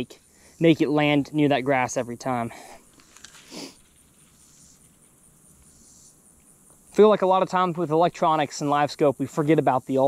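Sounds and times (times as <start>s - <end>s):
high-pitched insect chirping: 0.0s - 10.0s.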